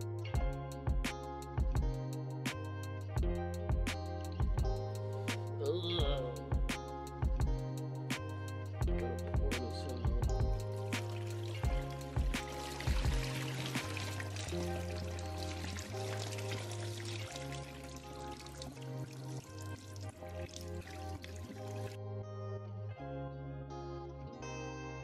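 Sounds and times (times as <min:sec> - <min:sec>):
background music: 0:00.0 - 0:25.0
water pouring into metal sink: 0:10.9 - 0:22.0.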